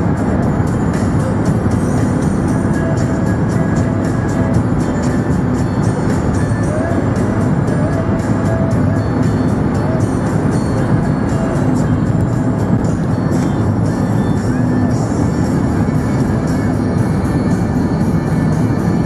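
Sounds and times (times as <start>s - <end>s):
music on car radio: 0.0s - 19.0s
road and engine hum: 0.0s - 19.0s.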